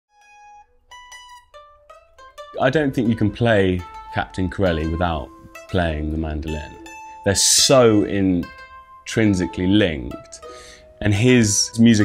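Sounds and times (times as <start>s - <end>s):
mandolins playing soft melody: 0.1s - 12.0s.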